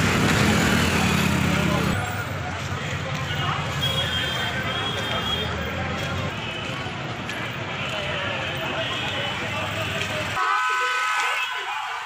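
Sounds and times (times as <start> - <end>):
traffic with low rumble: 0.0 - 10.4
crowd chatter: 0.0 - 12.0.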